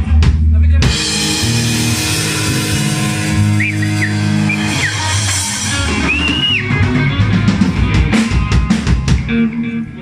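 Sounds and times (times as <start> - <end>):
electric bass low notes: 0.0 - 10.0
electric guitar bent notes: 0.9 - 10.0.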